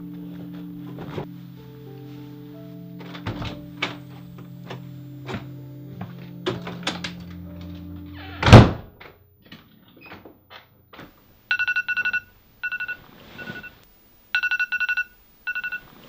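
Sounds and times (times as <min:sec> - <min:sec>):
door shutting with a thunk: 0:03.0 - 0:04.0, 0:08.3 - 0:09.2
smartphone ringing beeps: 0:11.5 - 0:15.9.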